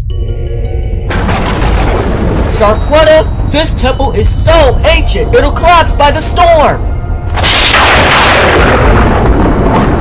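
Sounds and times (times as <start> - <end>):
loud rumbling boom: 1.1 - 4.8, 7.2 - 10.0.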